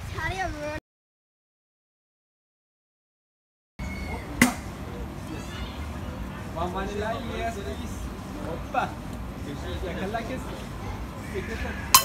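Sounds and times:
faint street chatter: 3.8 - 12.0
sharp knock: 4.4 - 4.7.

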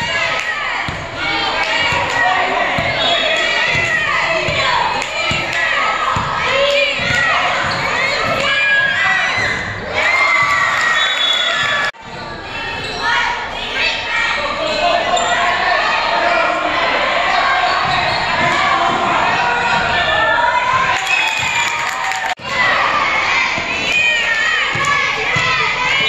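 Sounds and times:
people shouting in echoing hall: 0.0 - 26.0
basketball bouncing on gym floor: 5.3 - 9.0, 24.7 - 25.6.

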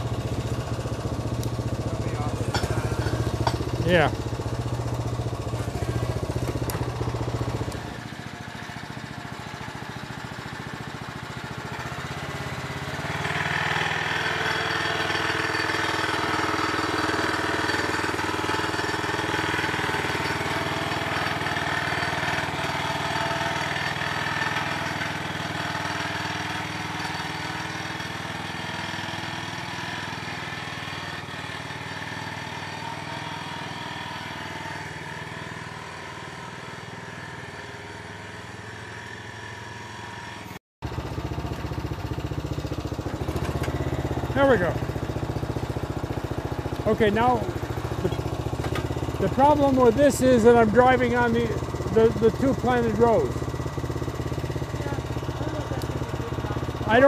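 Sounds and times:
small engine running: 0.0 - 57.0.

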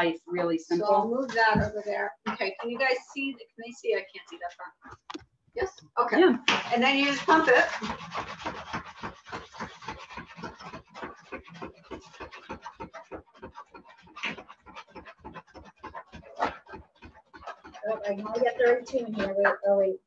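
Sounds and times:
cream whipper plunger strokes: 6.4 - 19.4.

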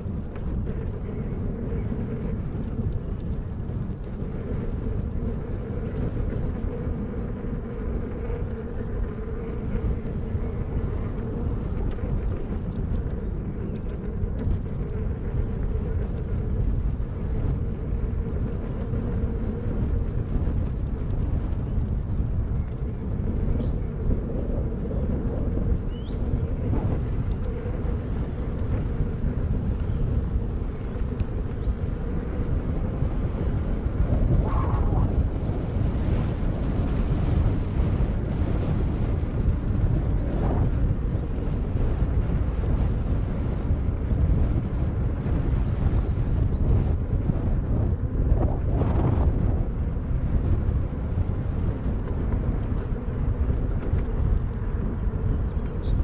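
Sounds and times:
low rumble of wheel on ground: 0.0 - 56.0
wind noise on microphone: 0.0 - 56.0.

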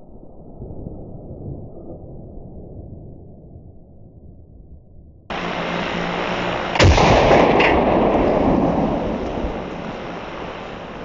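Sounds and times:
rifle shot with rolling echo: 5.3 - 11.0
steady background noise: 5.3 - 11.0.

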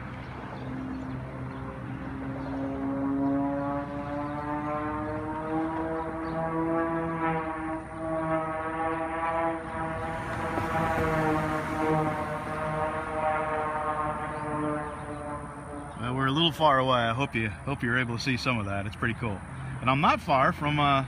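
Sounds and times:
propeller plane engine droning: 0.0 - 21.0.

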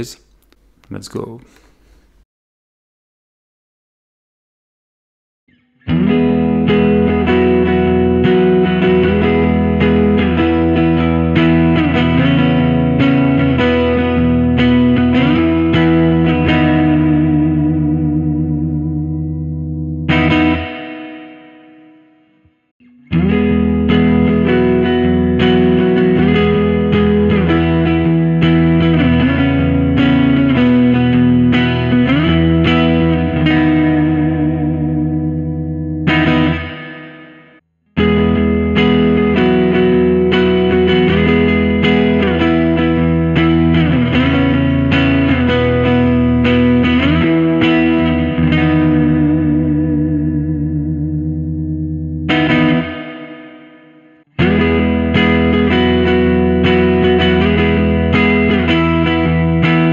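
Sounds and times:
electric guitar strummed chords: 5.5 - 59.9.

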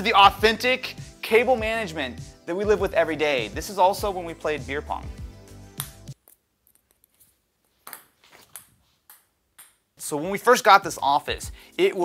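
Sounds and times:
background music: 0.0 - 6.2, 10.0 - 12.0
ping-pong ball bouncing on concrete: 7.9 - 9.8.

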